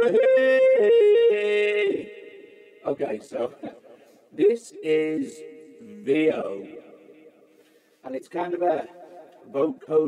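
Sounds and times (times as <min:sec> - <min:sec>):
vocoder synth voice: 0:00.0 - 0:03.8, 0:04.4 - 0:06.8.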